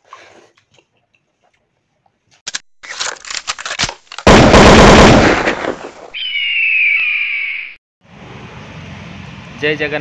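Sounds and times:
loud blast-like burst: 4.3s - 6.0s
high whistling tone sliding down: 6.2s - 7.8s.

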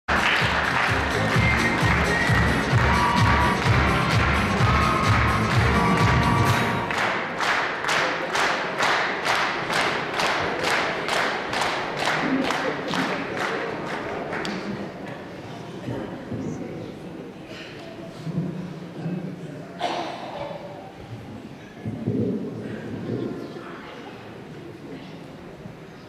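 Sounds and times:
stage music with low beat: 0.1s - 7.0s
audience clapping in time: 0.1s - 14.9s.

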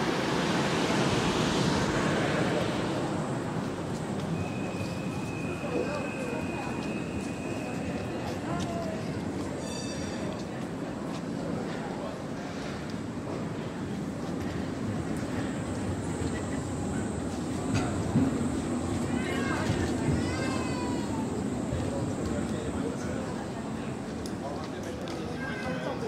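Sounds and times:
pedestrians chatting: 0.0s - 26.0s
trams running: 0.0s - 26.0s.

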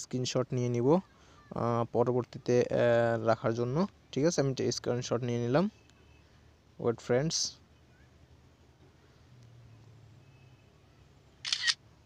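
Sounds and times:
phone camera shutter click: 11.4s - 11.8s.

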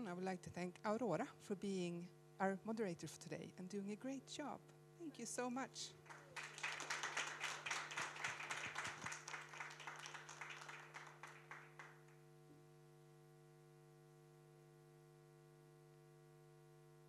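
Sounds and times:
steady electrical hum: 0.0s - 17.0s
audience applauding: 6.0s - 12.1s.

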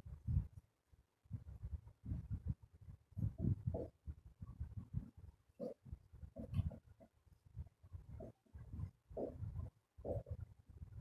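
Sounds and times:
marker writing on whiteboard: 3.2s - 7.2s, 8.0s - 10.5s.

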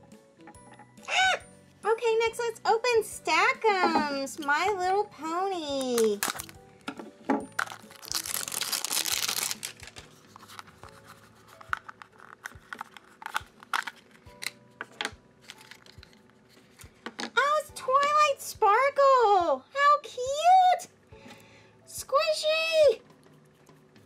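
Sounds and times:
plastic packaging crinkling and tearing: 5.8s - 6.6s, 7.5s - 14.6s.

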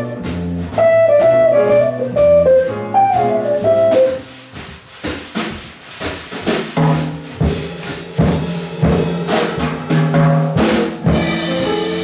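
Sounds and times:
drum and cymbal strikes: 0.0s - 12.0s
jazz band playing: 0.0s - 12.0s.

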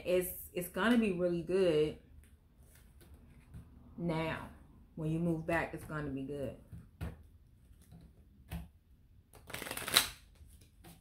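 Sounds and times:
cards sliding together: 9.3s - 11.0s
cards tapping: 9.3s - 11.0s.

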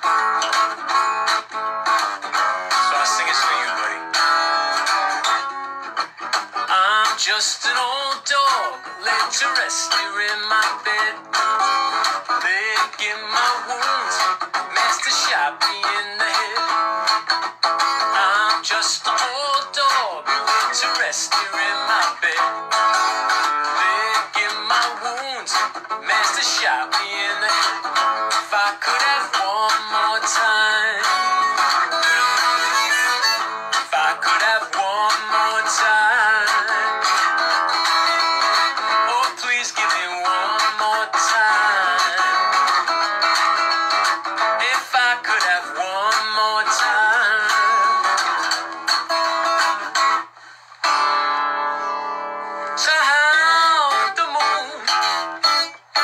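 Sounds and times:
acoustic guitar strumming: 0.0s - 56.0s
harmonica playing: 31.2s - 33.8s.

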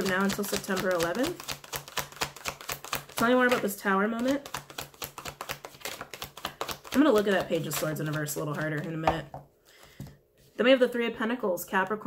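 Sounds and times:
cards being shuffled: 0.0s - 9.2s.

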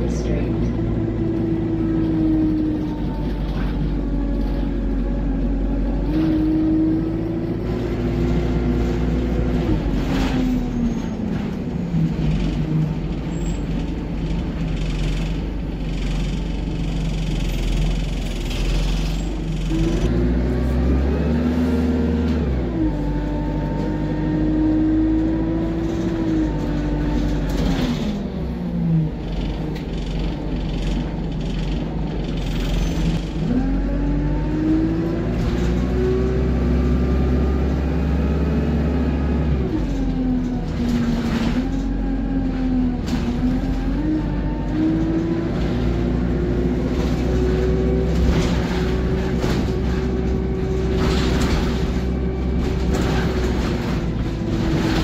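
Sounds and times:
bus diesel engine under acceleration: 0.0s - 55.0s.

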